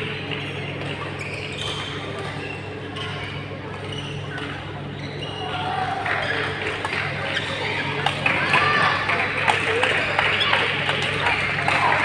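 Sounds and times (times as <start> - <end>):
shoes squeaking on court: 0.3 - 7.8.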